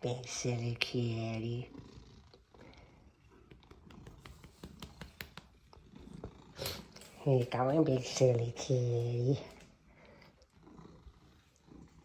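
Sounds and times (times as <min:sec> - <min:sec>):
cat purring: 0:00.0 - 0:12.0.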